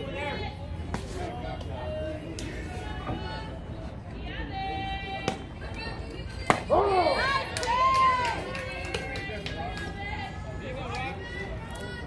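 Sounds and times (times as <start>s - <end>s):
spectators yelling and cheering: 6.7s - 12.0s.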